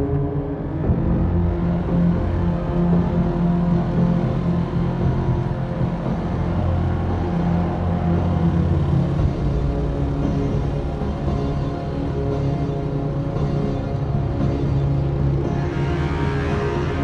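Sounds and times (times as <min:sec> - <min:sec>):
dark ominous film score: 0:00.0 - 0:17.0
motorcycle engine running: 0:00.8 - 0:17.0.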